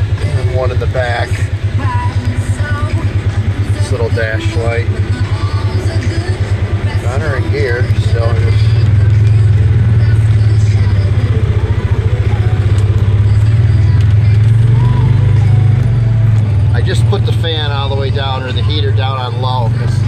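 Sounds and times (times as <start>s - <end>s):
engine droning: 0.0s - 20.0s
man talking: 0.1s - 1.6s, 3.8s - 5.0s, 7.0s - 8.8s, 16.7s - 20.0s.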